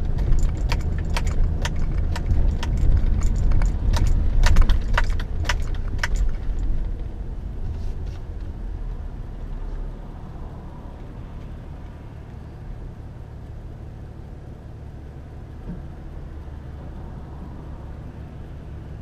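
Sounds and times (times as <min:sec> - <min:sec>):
car idling hum: 0:00.0 - 0:19.0
car road and engine rumble: 0:00.0 - 0:19.0.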